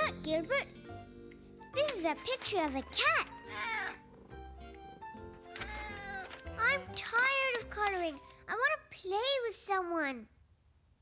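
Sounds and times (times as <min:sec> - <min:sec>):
soft background music: 0:00.0 - 0:09.0
cat meowing: 0:05.6 - 0:06.3.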